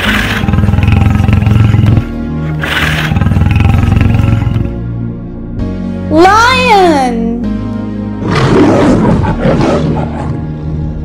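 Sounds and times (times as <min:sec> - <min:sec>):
lion roaring: 0:00.0 - 0:04.7, 0:08.2 - 0:10.5
children's background music: 0:00.0 - 0:11.0.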